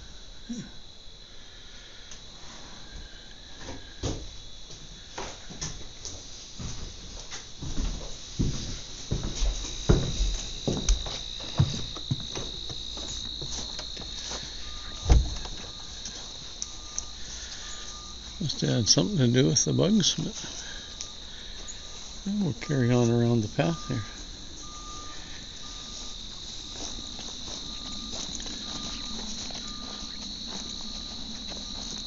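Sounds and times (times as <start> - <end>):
crickets chirring: 0.0 - 32.0
footsteps on wooden boards: 3.6 - 18.4, 25.4 - 32.0
heavy thump: 15.0 - 15.6.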